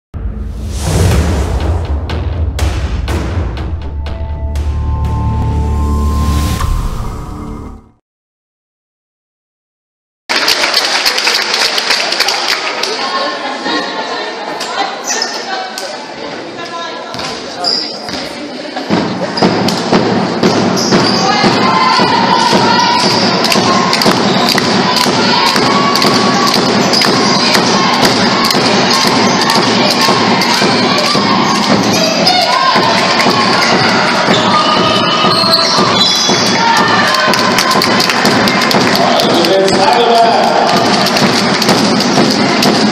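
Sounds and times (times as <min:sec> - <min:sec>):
crowd voices din: 0:12.4 - 0:42.9.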